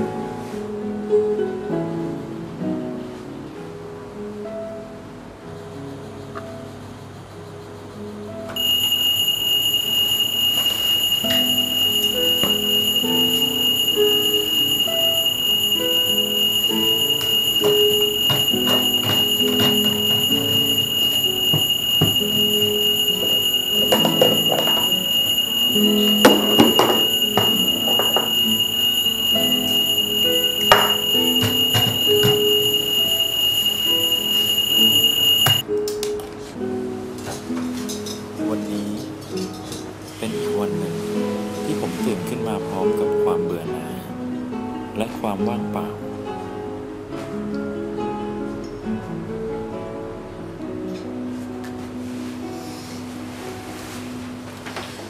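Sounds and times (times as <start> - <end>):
soft background music: 0.0 - 55.0
alarm clock electronic tone: 8.6 - 35.6.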